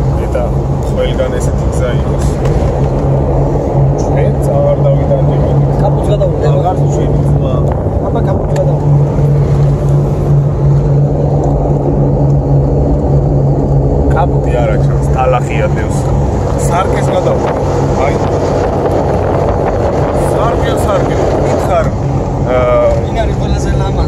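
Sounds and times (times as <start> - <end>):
car engine drone: 0.0 - 24.0
road noise: 0.0 - 24.0.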